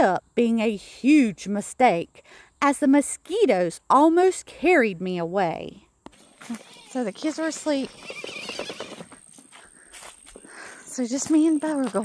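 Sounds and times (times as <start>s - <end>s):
footsteps on sandy trail: 6.1s - 12.0s.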